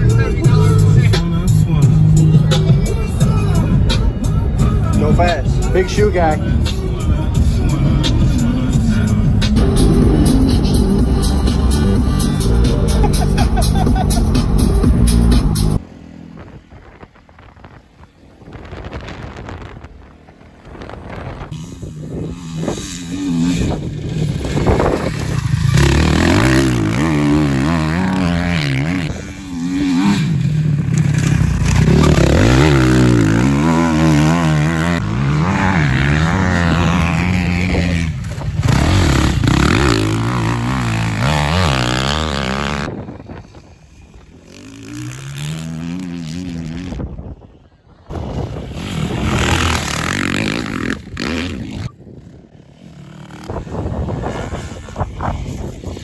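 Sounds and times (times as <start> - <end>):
dirt bike engine revving: 0.0 - 47.2, 48.1 - 56.0.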